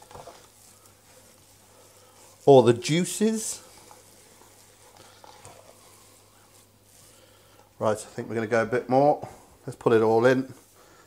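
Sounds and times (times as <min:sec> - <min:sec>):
wet squishing of hand kneading: 0:00.0 - 0:08.6.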